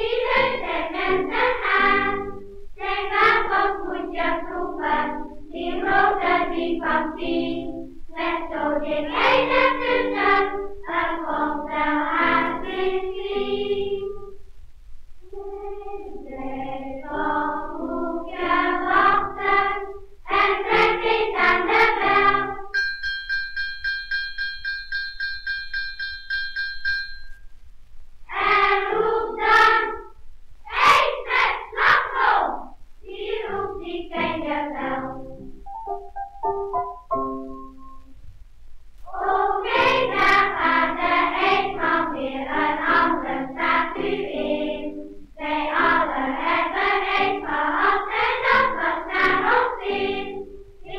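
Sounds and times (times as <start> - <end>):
children's choir singing: 0.0 - 14.4, 15.2 - 22.8, 28.3 - 35.6, 39.1 - 50.9
bell ringing in quick strokes: 22.7 - 27.5
record surface rumble: 27.3 - 50.9.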